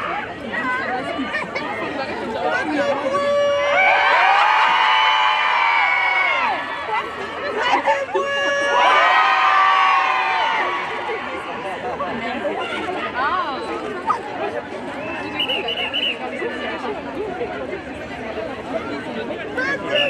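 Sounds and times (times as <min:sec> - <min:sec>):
crowd calling out: 0:02.7 - 0:11.6.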